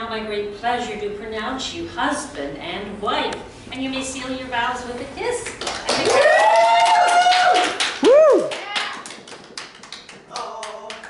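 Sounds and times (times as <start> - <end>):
people clapping: 5.4 - 11.0
people cheering and whooping: 6.0 - 9.0.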